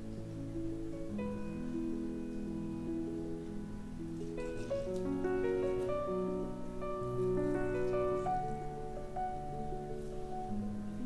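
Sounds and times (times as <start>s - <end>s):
calm keyboard instrumental music: 0.0s - 11.0s.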